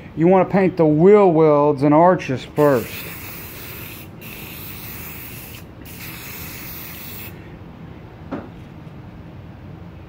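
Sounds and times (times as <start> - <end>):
aerosol spray can hissing: 2.6 - 7.4.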